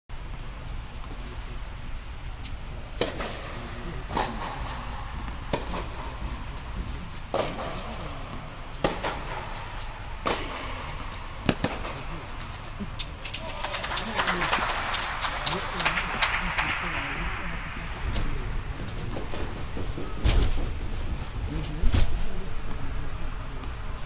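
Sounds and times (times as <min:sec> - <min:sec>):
tennis ball hits: 0:08.8 - 0:09.4
murmur of spectators: 0:10.8 - 0:24.0.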